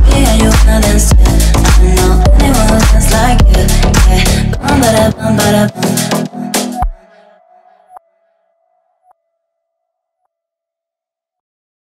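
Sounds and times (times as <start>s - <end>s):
electronic dance music echo: 0.0s - 7.9s.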